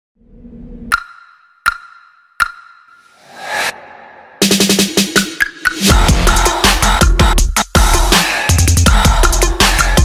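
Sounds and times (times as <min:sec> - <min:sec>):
low swell: 0:03.1 - 0:05.0.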